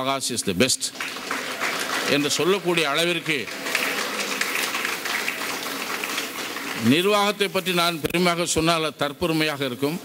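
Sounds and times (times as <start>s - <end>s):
audience applauding: 0.8s - 7.8s.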